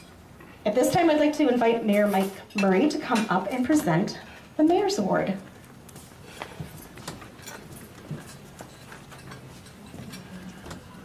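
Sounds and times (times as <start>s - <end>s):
faint crowd murmur: 6.0s - 11.0s.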